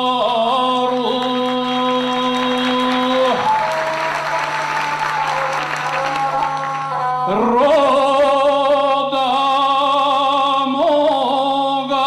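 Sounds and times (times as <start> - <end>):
man singing: 0.0 - 12.0
audience applause: 0.8 - 7.6.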